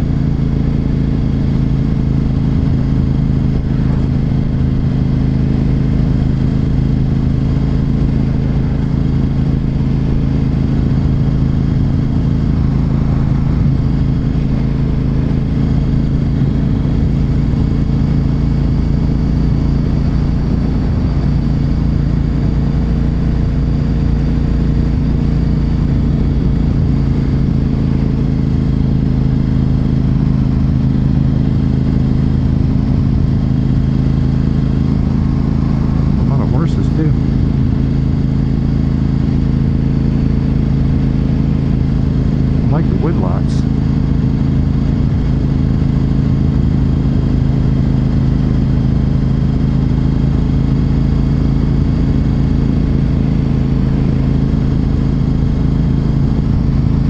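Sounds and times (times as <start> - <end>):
motorcycle engine cruising: 0.0 - 57.0
wind and road noise: 0.0 - 57.0.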